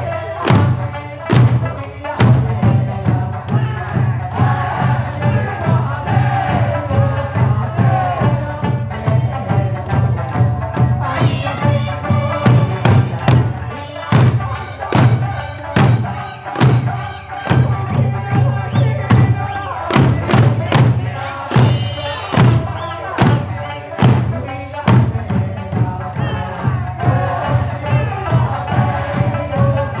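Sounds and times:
barrel and hand drums: 0.0s - 30.0s
folk song singing: 0.0s - 30.0s.

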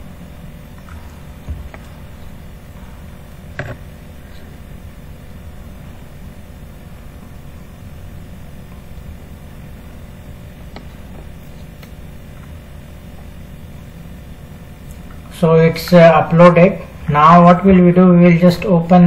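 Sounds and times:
room hum and hiss: 0.0s - 19.0s.

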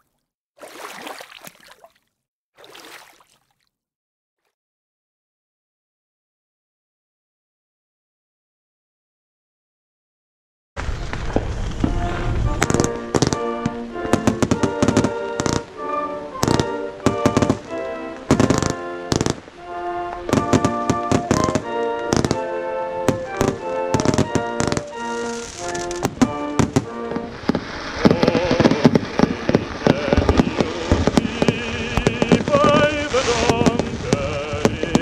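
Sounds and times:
firework bangs and pops: 10.8s - 19.5s, 20.2s - 35.0s
fireworks crackling: 10.8s - 35.0s
music with held notes: 11.9s - 27.9s.

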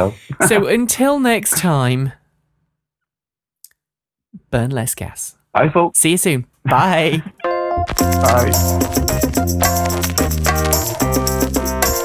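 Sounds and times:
person speaking: 0.0s - 2.2s, 8.2s - 8.8s.

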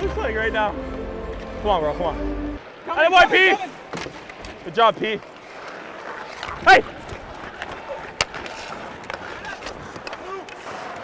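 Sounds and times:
skate blades scraping ice: 3.6s - 11.0s
hockey stick crack: 3.9s - 11.0s.

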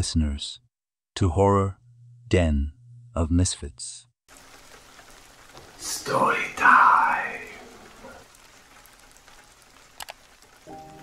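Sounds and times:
faint rain hiss: 4.3s - 11.0s.

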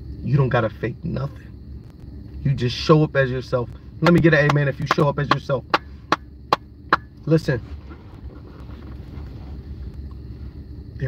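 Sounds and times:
low steady rumble: 0.0s - 11.0s
faint rustling hiss: 7.4s - 11.0s.

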